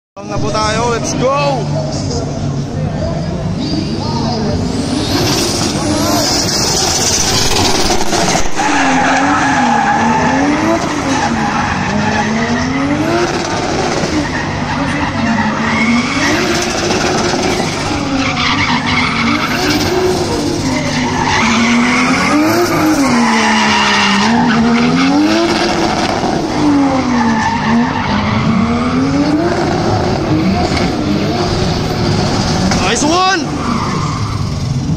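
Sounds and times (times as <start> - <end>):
turbo engine revving: 4.3 - 34.9
tyre squeal: 14.0 - 25.8.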